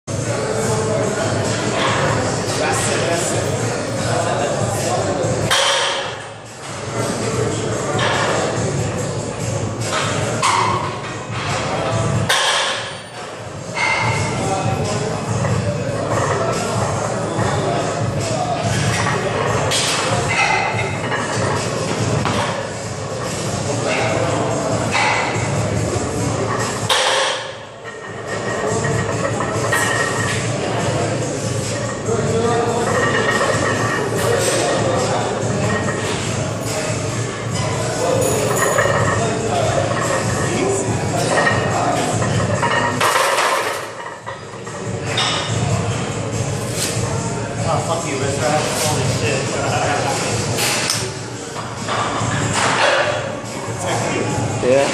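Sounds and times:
people talking: 0:00.1 - 0:54.9
music: 0:06.4 - 0:27.1.

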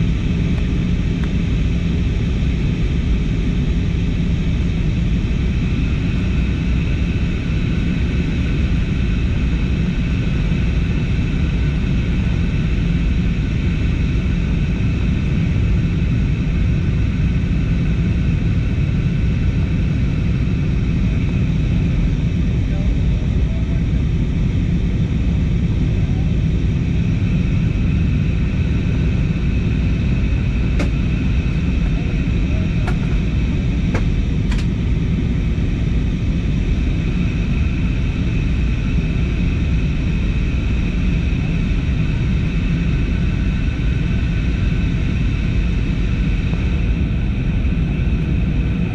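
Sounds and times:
jet engine and airflow rumble: 0:00.0 - 0:48.9
steady whine: 0:00.0 - 0:48.9.

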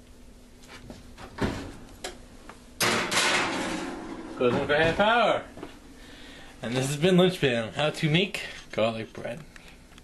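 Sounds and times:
oven door banging shut: 0:02.8 - 0:05.2.

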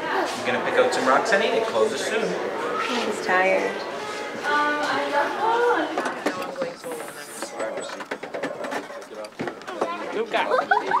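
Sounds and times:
shop chatter: 0:00.0 - 0:11.0.

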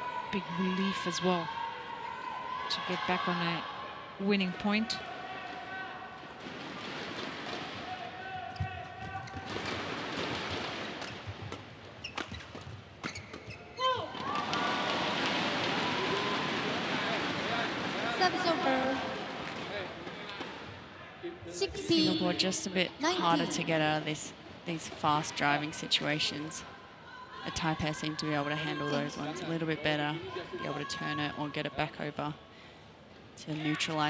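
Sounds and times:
crowd calls and shouts: 0:14.0 - 0:23.9
crowd voices din: 0:15.8 - 0:24.2.

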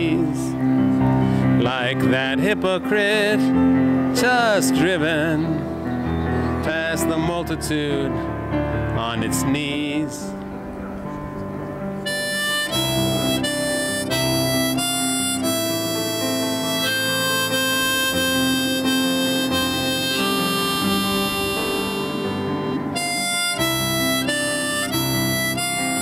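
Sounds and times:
harmonica melody: 0:11.8 - 0:26.0.

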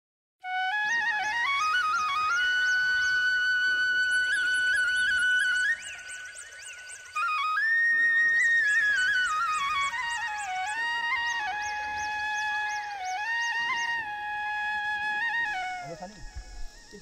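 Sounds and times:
flute playing ornamented melody: 0:00.4 - 0:17.0.

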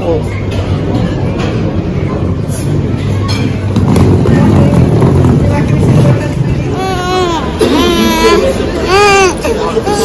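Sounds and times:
faint voices: 0:00.0 - 0:10.0
wheels rolling on tiled floor: 0:03.6 - 0:06.9.

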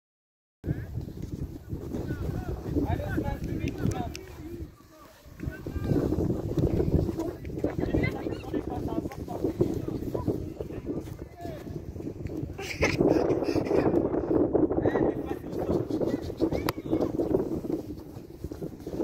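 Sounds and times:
children's voices and calls: 0:03.8 - 0:11.8, 0:15.1 - 0:18.1.

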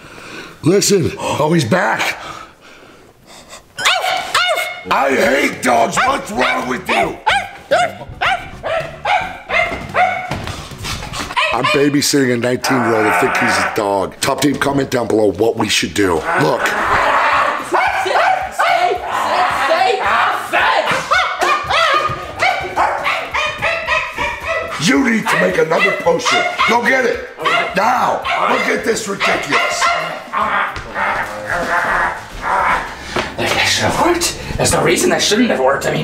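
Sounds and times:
dog barking: 0:03.8 - 0:04.9, 0:05.9 - 0:10.4, 0:11.3 - 0:12.0, 0:17.7 - 0:19.0, 0:20.8 - 0:31.3.

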